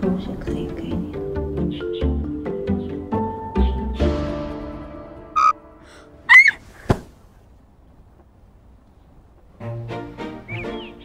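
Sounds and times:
rising squeak: 5.4 - 5.6.

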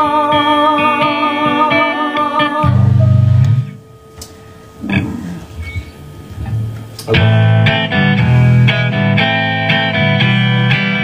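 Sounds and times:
amplifier hum: 0.0 - 11.0
low guitar note ringing: 2.6 - 8.9.

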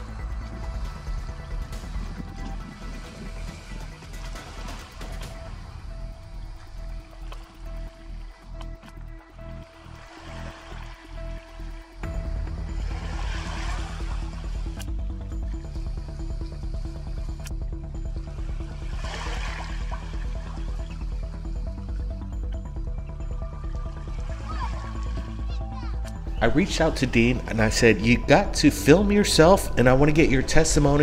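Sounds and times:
pulsing low beat: 0.0 - 31.0
held music notes: 19.9 - 31.0.

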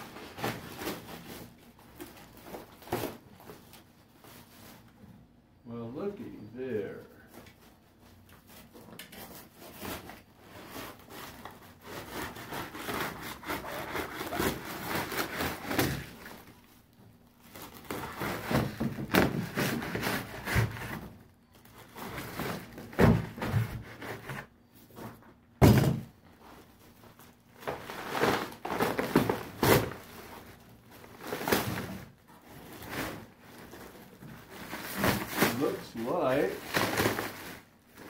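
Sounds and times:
plastic crinkling: 7.2 - 23.4, 26.4 - 38.0
foam scraping and tearing: 8.4 - 16.7, 17.4 - 25.2, 26.4 - 38.0
knife slicing plastic bag: 9.2 - 16.5, 17.4 - 21.1, 32.7 - 38.0.

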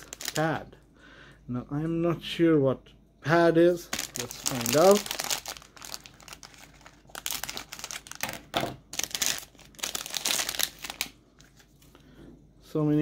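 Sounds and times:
plastic bag crinkling: 0.0 - 0.7, 3.8 - 12.0.

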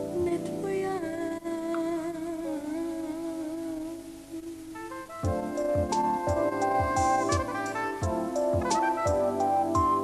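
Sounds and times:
soft backing music: 0.0 - 10.0.

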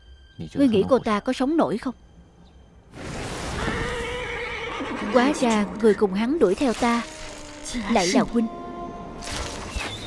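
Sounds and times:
horse neighing: 3.6 - 5.7.

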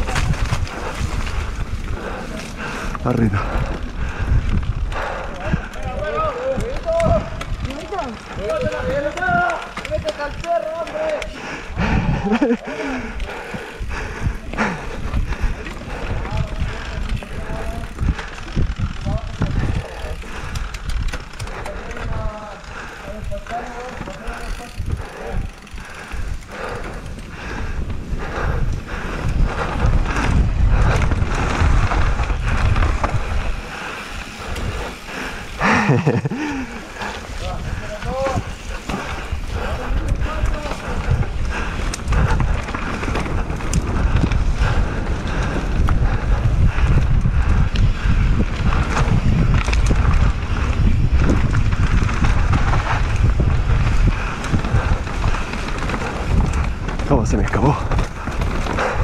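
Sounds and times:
heavy rumble: 0.0 - 10.1, 11.4 - 59.0
bike rattling over bumps: 0.0 - 59.0
bike tyres rolling over dirt: 0.0 - 59.0.

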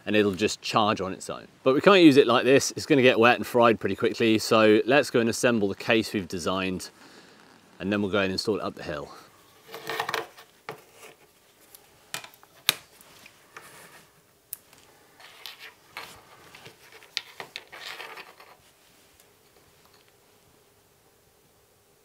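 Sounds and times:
rustling: 4.1 - 20.6.

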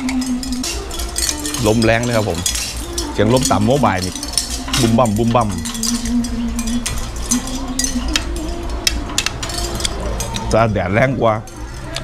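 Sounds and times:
cutlery clinking on a plate: 0.0 - 10.8, 11.4 - 12.0
wind chime bell ringing: 0.0 - 12.0.

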